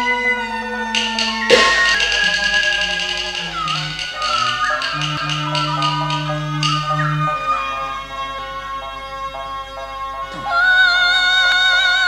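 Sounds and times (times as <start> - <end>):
opera instrumental accompaniment: 0.0 - 12.0
high sliding melody line: 0.9 - 8.4.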